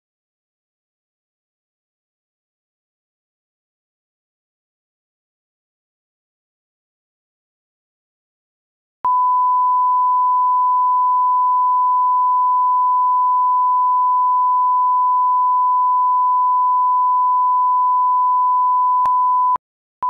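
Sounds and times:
sine-wave test tone: 0:09.1 - 0:19.6.

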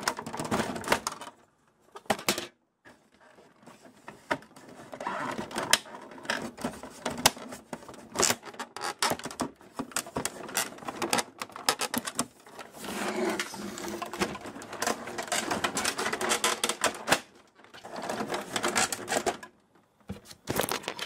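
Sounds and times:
plastic panels clicking and snapping: 0:00.0 - 0:02.6, 0:05.3 - 0:12.7, 0:13.3 - 0:21.0
plastic scraping and rattling: 0:00.0 - 0:21.0.

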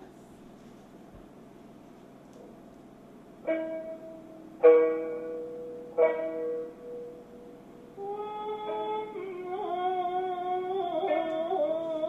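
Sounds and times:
plucked string instrument notes: 0:03.4 - 0:12.0.

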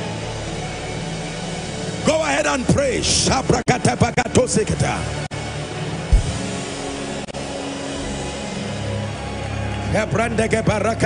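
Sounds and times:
low thump: 0:06.1 - 0:06.7.

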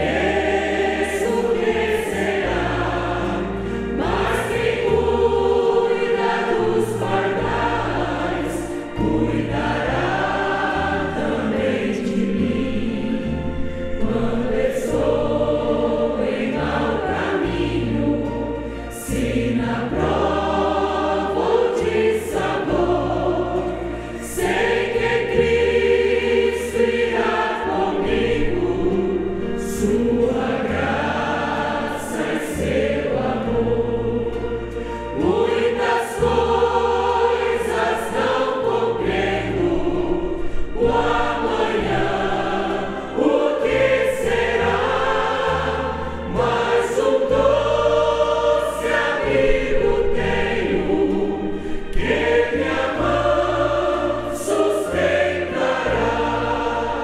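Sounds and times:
congregation singing a hymn: 0:00.0 - 0:57.0
instrumental accompaniment: 0:00.0 - 0:57.0.

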